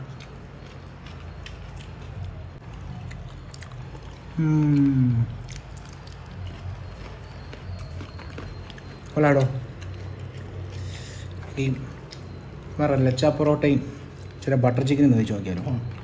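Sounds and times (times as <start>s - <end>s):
man chewing food: 0.0s - 16.0s
man humming mm: 4.4s - 5.4s.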